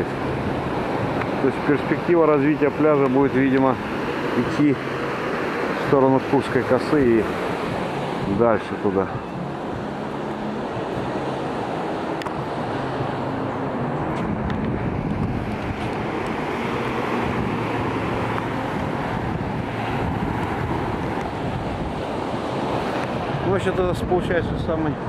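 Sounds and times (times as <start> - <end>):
surf breaking on a beach: 0.0 - 25.0
wind buffeting microphone: 6.9 - 25.0.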